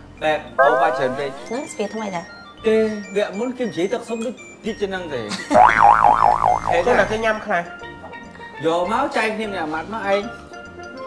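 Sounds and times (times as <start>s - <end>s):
comic boing sound effect: 0.6s - 1.6s, 5.6s - 7.2s.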